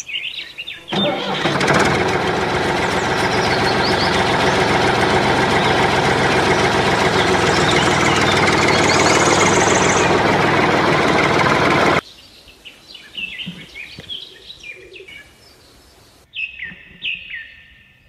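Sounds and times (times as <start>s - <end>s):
tractor engine running: 0.9s - 12.0s
bird chirps: 2.9s - 4.8s, 5.4s - 10.4s.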